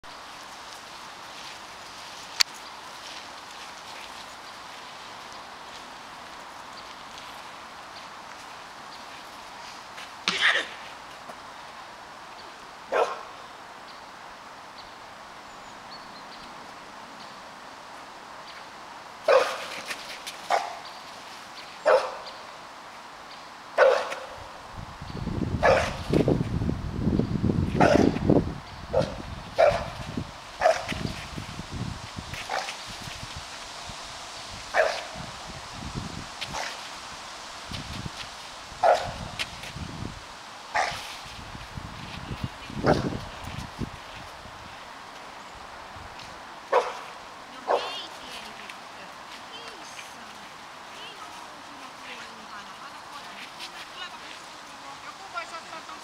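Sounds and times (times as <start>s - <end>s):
dog barking sharply: 12.9s - 13.3s, 19.3s - 19.7s, 21.9s - 22.2s, 23.8s - 24.3s, 25.6s - 26.0s, 27.8s - 28.2s, 29.0s - 30.0s, 30.6s - 30.9s, 34.8s - 35.1s, 38.8s - 39.2s, 40.8s - 41.0s, 46.7s - 47.0s.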